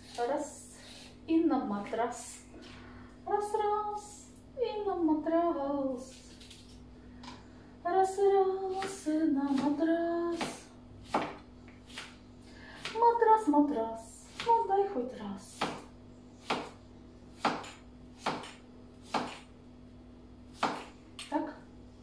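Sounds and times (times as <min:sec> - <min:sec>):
woman singing wordless phrases: 0:03.3 - 0:06.2, 0:07.8 - 0:10.7, 0:13.0 - 0:15.6.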